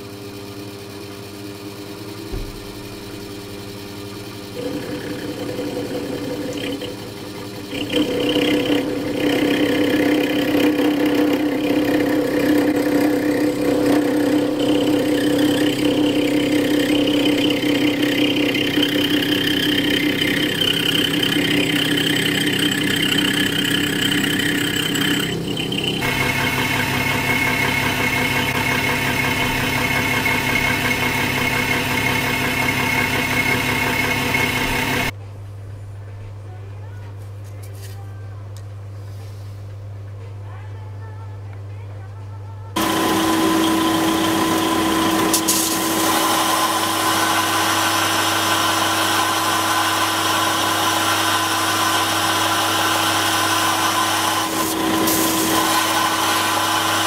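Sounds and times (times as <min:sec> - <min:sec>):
metal lathe motor and gear whine: 0:00.0 - 0:35.1, 0:42.8 - 0:57.0.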